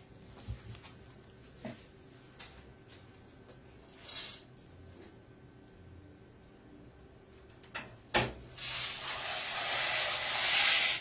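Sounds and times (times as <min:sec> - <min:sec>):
steady hiss at stove: 0:08.4 - 0:11.0.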